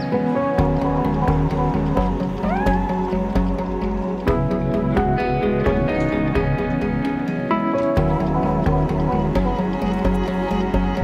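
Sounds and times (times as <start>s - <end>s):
background music with beat: 0.0s - 11.0s
cat meowing: 2.4s - 3.2s.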